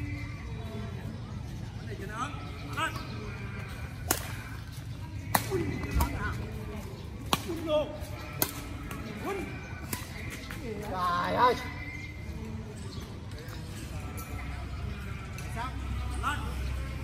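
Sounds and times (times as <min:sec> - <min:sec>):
low street hum: 0:00.0 - 0:17.0
rackets hitting shuttlecock: 0:04.0 - 0:04.5, 0:05.2 - 0:06.3, 0:07.2 - 0:07.7, 0:08.3 - 0:09.2, 0:09.8 - 0:10.6.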